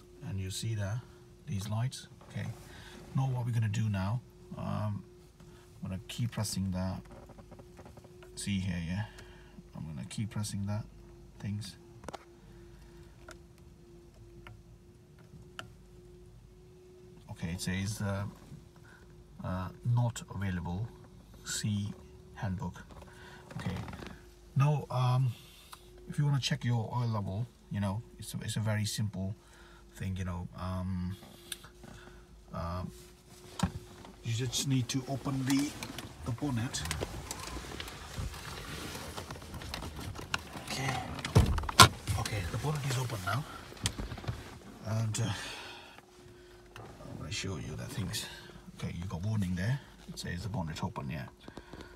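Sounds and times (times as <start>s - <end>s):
low steady hum: 0.0s - 51.9s
phone handling rustle: 33.1s - 44.8s.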